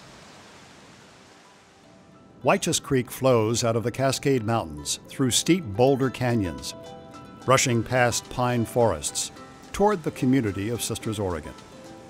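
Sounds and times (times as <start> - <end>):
fast-flowing creek rushing: 7.6 - 12.0.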